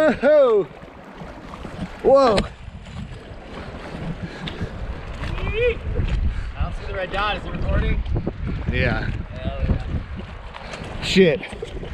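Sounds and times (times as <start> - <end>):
river water rushing and splashing: 0.0 - 8.5, 9.6 - 11.9
wind rumbling on microphone: 0.8 - 11.9.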